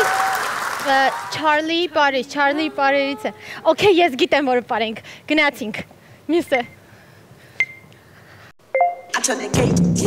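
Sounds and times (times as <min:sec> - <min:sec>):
electronic countdown beeps: 0:07.6 - 0:07.9, 0:08.7 - 0:09.2.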